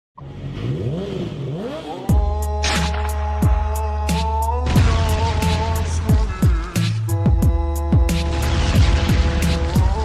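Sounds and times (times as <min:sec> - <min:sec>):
engine revving: 0:00.2 - 0:07.1.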